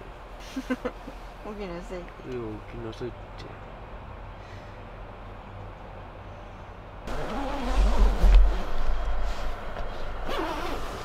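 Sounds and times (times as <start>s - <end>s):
tent fabric rustling: 7.1s - 11.0s.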